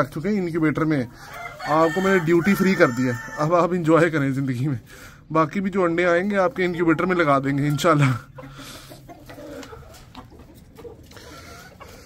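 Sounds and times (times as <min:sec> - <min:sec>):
chickens clucking quietly: 0:00.0 - 0:12.0.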